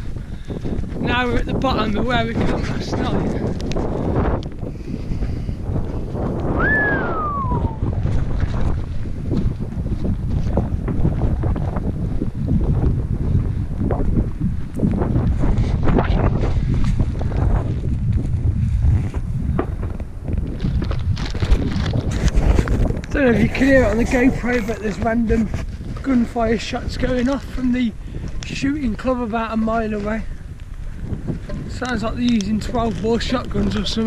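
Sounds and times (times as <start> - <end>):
wind buffeting microphone: 0.0 - 34.0
falling whistle: 6.6 - 7.8.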